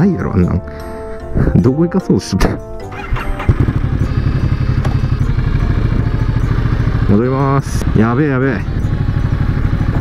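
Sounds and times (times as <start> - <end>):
motorcycle engine idling: 2.9 - 10.0.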